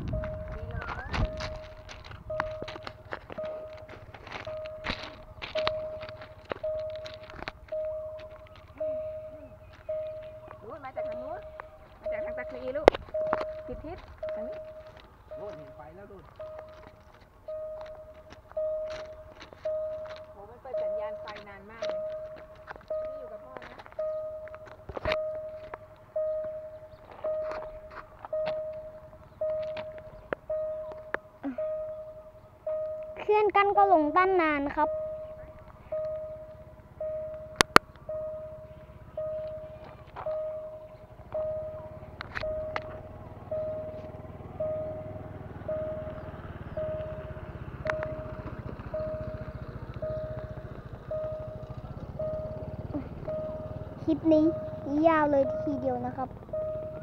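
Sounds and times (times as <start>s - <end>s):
level crossing warning alarm: 0.0s - 57.0s
sharp clicks: 37.3s - 38.1s, 47.8s - 50.6s.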